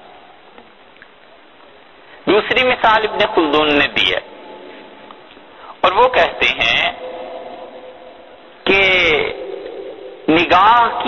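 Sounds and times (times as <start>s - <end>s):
faint hum and hiss: 0.0s - 11.0s
man speaking: 2.3s - 4.3s, 5.7s - 7.3s, 8.6s - 9.6s, 10.3s - 11.0s.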